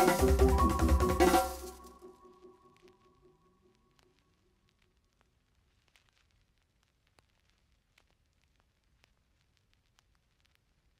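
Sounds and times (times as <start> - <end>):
small crackles and clicks: 2.6 - 10.9.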